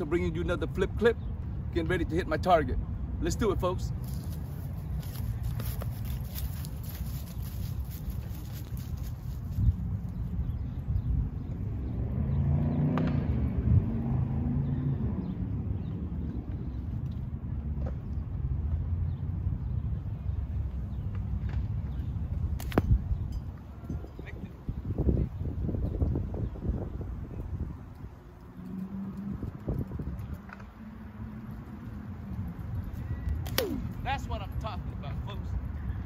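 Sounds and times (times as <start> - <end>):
road traffic rumble: 0.0 - 36.0
wind: 0.0 - 36.0
car passing by: 11.9 - 15.5.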